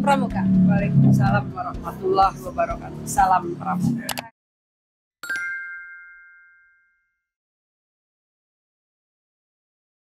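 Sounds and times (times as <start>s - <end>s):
bell-like chime: 5.2s - 7.3s.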